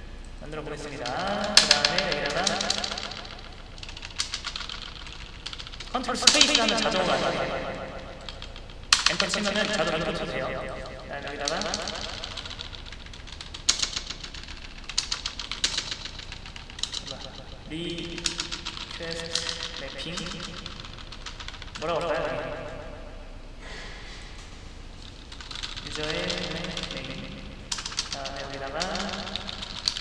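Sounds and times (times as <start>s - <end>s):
keyboard key clicks: 0.8s - 23.0s, 25.1s - 30.0s.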